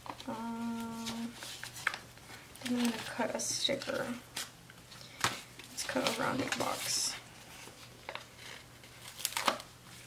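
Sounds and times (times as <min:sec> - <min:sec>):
paper sticker sheet rustling: 0:05.8 - 0:10.0.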